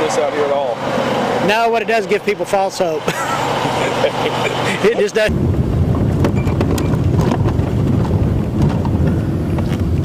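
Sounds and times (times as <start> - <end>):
vehicle engine drone: 0.0 - 10.0
person laughing: 3.0 - 5.2
person speaking: 3.9 - 5.3.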